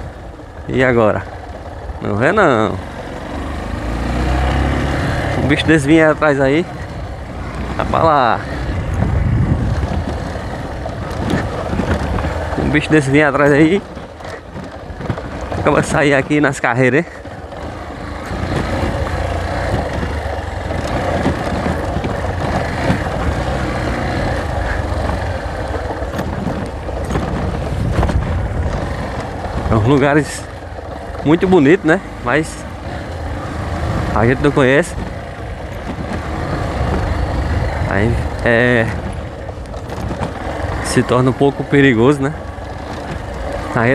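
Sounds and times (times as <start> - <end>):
motorcycle engine running: 0.0 - 43.9
wind buffeting microphone: 3.7 - 43.9
knocks and rattles: 4.0 - 43.9.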